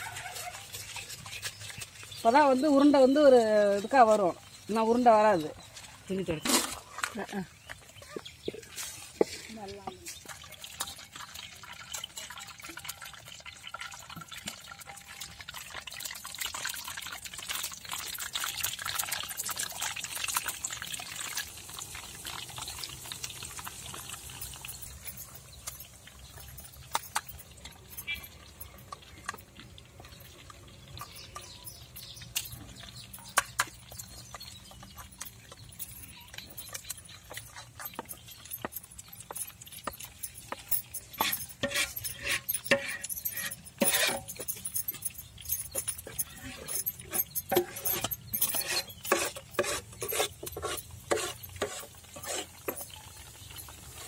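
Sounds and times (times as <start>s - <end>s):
batter sizzling in hot oil: 8.2s - 54.0s.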